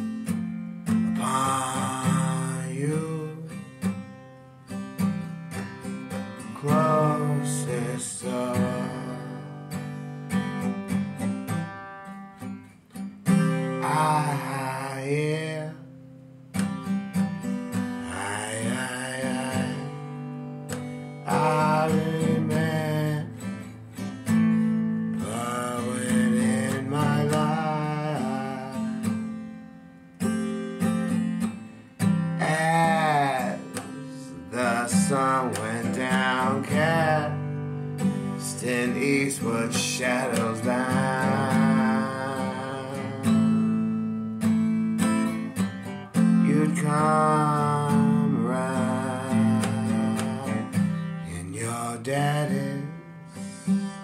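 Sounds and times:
acoustic guitar strumming: 0:00.0 - 0:54.0
man singing: 0:01.1 - 0:03.8, 0:06.1 - 0:09.9, 0:13.4 - 0:15.9, 0:17.7 - 0:24.2, 0:25.1 - 0:29.4, 0:32.3 - 0:44.0, 0:46.1 - 0:54.0.

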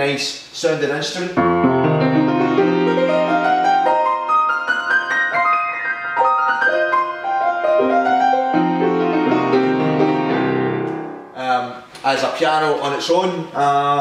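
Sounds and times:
man talking: 0:00.0 - 0:01.4, 0:11.4 - 0:14.0
piano melody: 0:01.4 - 0:11.4.

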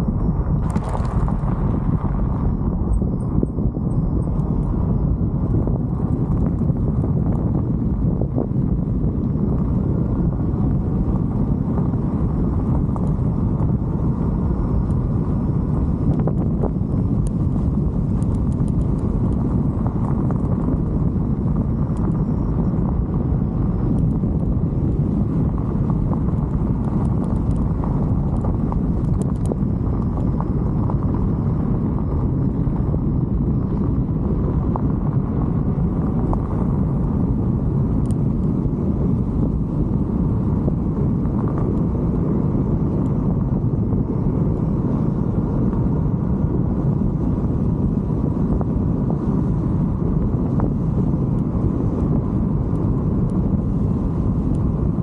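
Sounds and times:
wind rumble on microphone: 0:00.0 - 0:55.0
tyres rolling over rough pavement: 0:00.3 - 0:02.9.

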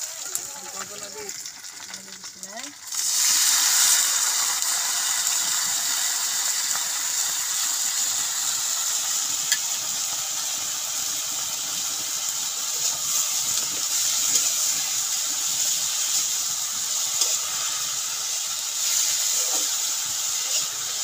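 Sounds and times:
greens sizzling in hot oil: 0:00.0 - 0:21.0.

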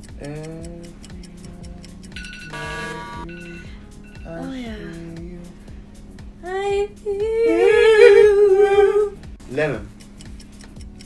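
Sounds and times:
woman humming: 0:00.0 - 0:05.6, 0:06.4 - 0:09.3.

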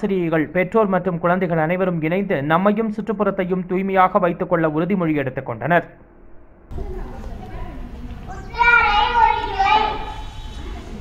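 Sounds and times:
child reading aloud: 0:06.8 - 0:11.0.

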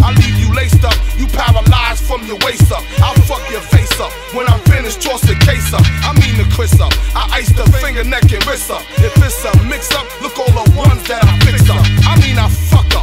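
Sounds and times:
rapping over a beat: 0:00.0 - 0:13.0.

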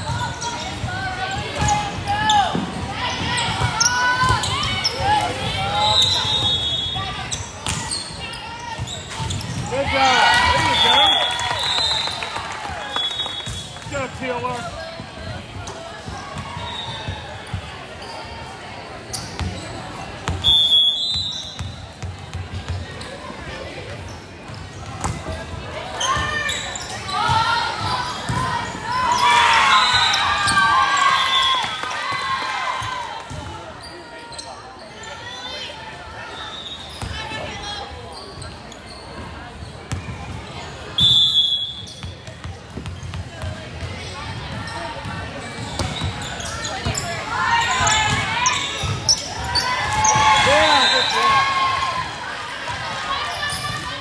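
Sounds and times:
crowd shouting and cheering: 0:00.0 - 0:07.5, 0:08.1 - 0:21.0, 0:25.4 - 0:38.0, 0:43.6 - 0:54.0
chatter in a gym: 0:00.0 - 0:54.0
referee's whistle: 0:05.7 - 0:08.1, 0:10.5 - 0:13.8, 0:16.6 - 0:17.2, 0:20.4 - 0:21.8, 0:29.2 - 0:31.8, 0:36.3 - 0:37.2, 0:40.9 - 0:42.1, 0:47.7 - 0:51.6
volleyball hits and bounces: 0:42.0 - 0:47.0.

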